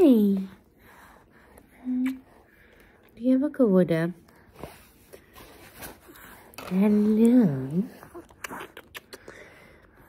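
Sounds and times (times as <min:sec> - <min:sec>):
soft handling rustles: 0:04.4 - 0:07.9.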